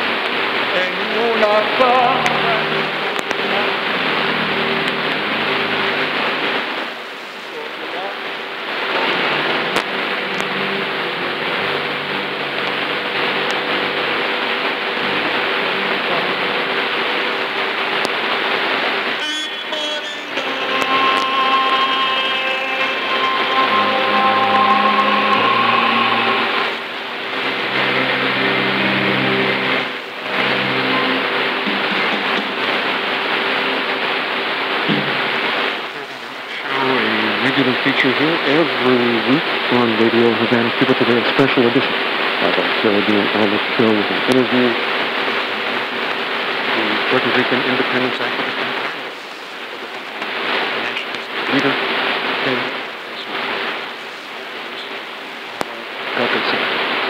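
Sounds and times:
held musical notes: 0.0 - 48.4
radio static hiss: 0.0 - 57.0
muffled radio programme audio: 1.1 - 18.2, 19.0 - 56.7.

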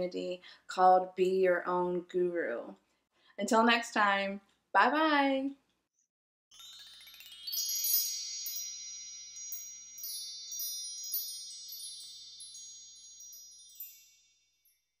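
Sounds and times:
shimmering chime sound effect: 6.5 - 15.0.

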